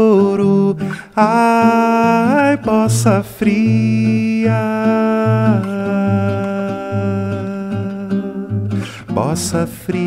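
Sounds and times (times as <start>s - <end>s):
man singing a long note: 0.0s - 10.0s
nylon-string guitar plucking: 0.0s - 10.0s.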